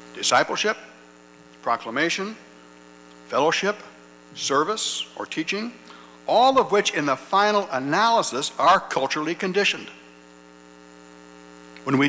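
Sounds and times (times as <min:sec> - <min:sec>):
electrical mains hum: 0:00.0 - 0:12.0
man's voice: 0:03.3 - 0:10.0.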